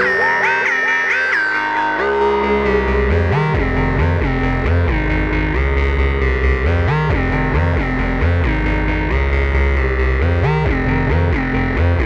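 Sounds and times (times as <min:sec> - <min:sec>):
buzzy synthesizer melody with echo: 0:00.0 - 0:12.0.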